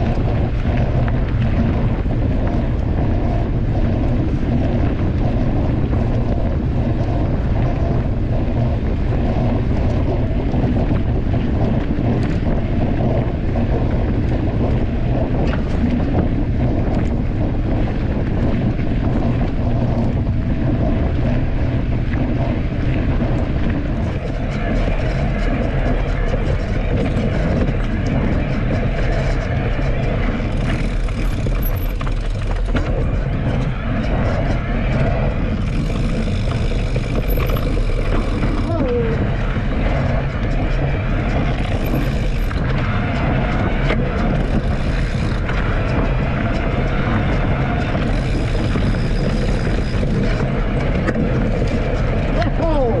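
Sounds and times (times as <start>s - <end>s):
tyres rolling over dirt: 0.0s - 53.0s
wind buffeting microphone: 0.0s - 53.0s.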